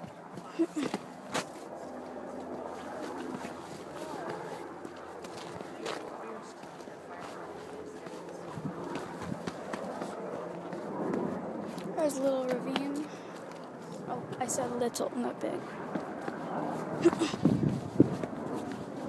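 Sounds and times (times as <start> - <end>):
faint voices: 0.0 - 17.5
footsteps on rock: 0.3 - 13.6.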